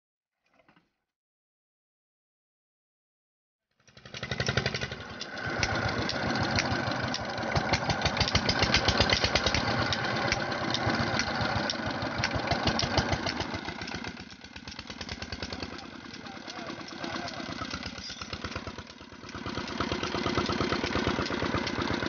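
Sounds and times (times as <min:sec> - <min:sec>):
diesel engine running: 0:04.1 - 0:22.0.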